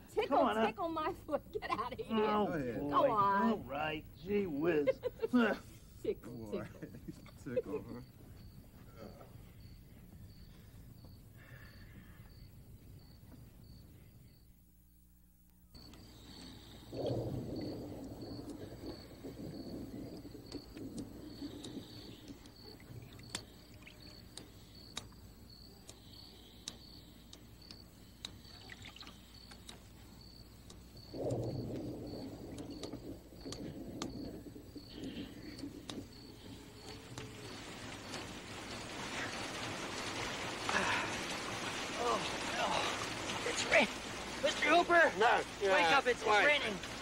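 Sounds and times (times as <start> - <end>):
high insect chirping: 0.0 - 14.7, 15.6 - 47.0
rain hiss: 0.0 - 14.8, 15.6 - 47.0.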